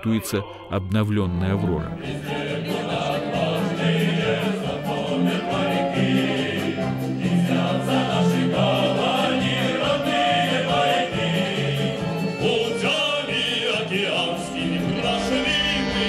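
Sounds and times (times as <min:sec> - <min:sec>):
male choir singing: 0:02.0 - 0:16.0.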